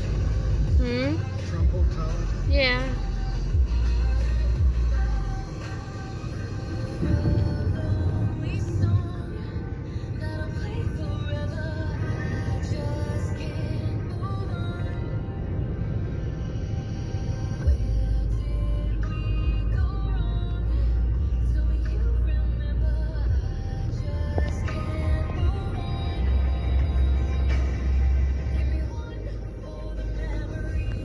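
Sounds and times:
low vehicle rumble: 0:00.0 - 0:31.0.

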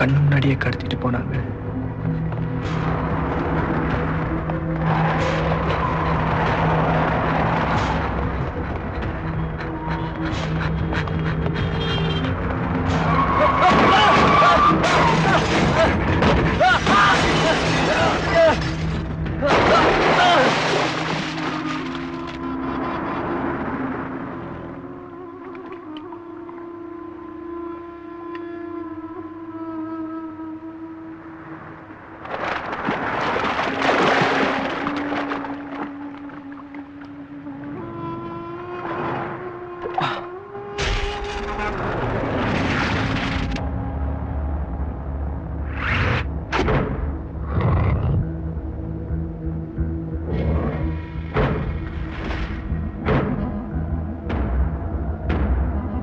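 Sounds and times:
tense background music: 0:00.0 - 0:56.0
crash and vehicle sound effects: 0:02.6 - 0:08.6, 0:40.8 - 0:43.7.

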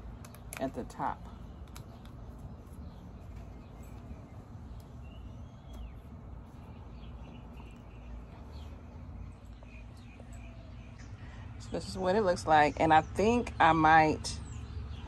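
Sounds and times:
steady low rumble: 0:00.0 - 0:15.0
faint bird chirps: 0:01.4 - 0:11.8.

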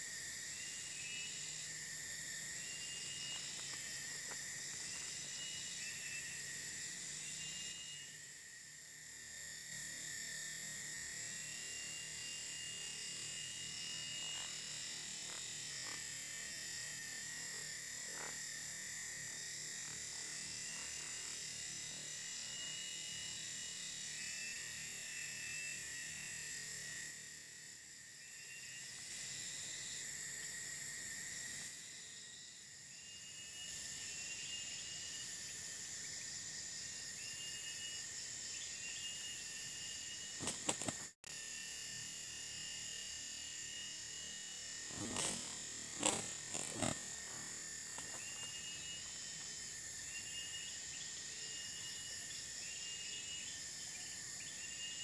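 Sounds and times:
insect chorus drone: 0:00.0 - 0:55.0.

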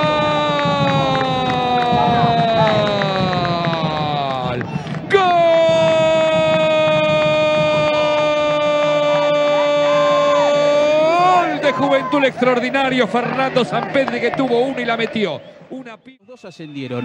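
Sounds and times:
commentator shouting goal: 0:00.0 - 0:15.3.

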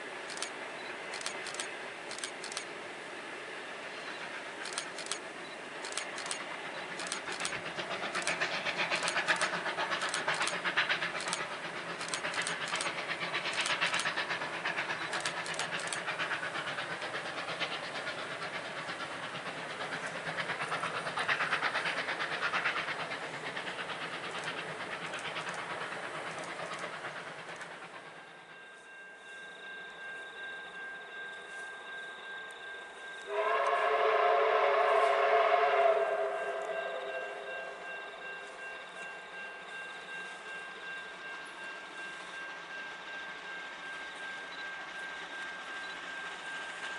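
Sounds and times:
train running noise: 0:00.0 - 0:46.9
sharp wheel clicks: 0:00.3 - 0:02.7, 0:04.6 - 0:05.2, 0:05.8 - 0:10.6, 0:11.2 - 0:14.2, 0:15.1 - 0:16.1
steam whistle: 0:33.2 - 0:38.2.

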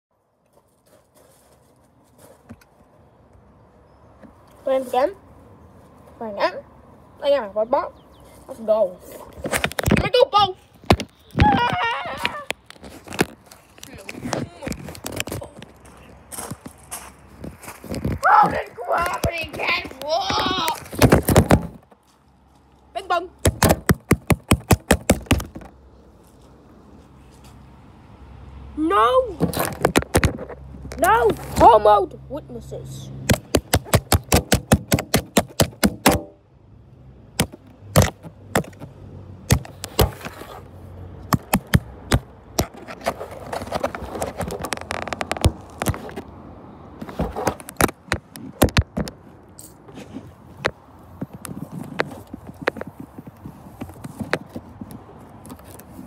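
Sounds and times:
low background noise: 0:00.1 - 0:56.0
sharp knock: 0:23.4 - 0:25.5, 0:33.3 - 0:36.4
quick sharp taps: 0:33.3 - 0:36.3
phone handling rustles: 0:39.5 - 0:40.6, 0:41.2 - 0:46.2.

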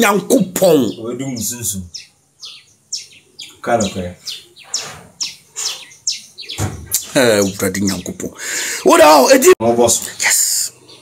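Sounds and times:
small bird chirping: 0:00.0 - 0:08.9, 0:09.9 - 0:11.0
man's voice: 0:07.0 - 0:10.8.

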